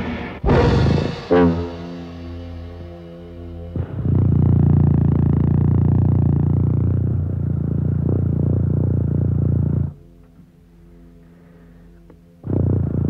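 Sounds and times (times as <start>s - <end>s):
loud dense low rumble: 0.4s - 10.0s.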